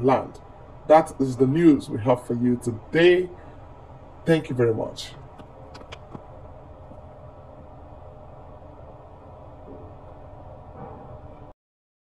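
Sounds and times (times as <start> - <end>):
low background hum: 0.0 - 11.6.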